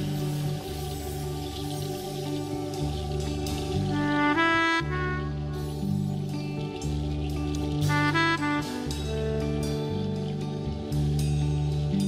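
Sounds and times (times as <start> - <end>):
slow live band music: 0.0 - 12.0
sustained bass notes: 0.0 - 12.0.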